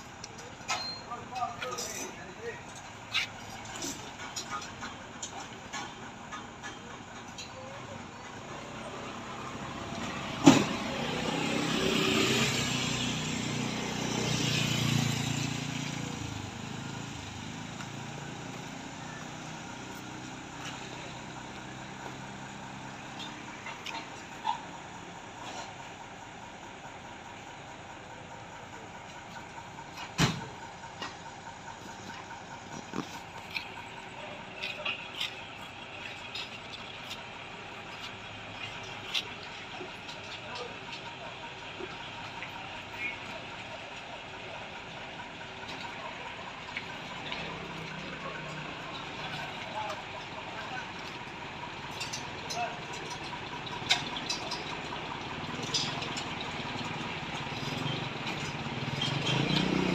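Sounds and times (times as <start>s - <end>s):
truck engine running: 0.0s - 59.9s.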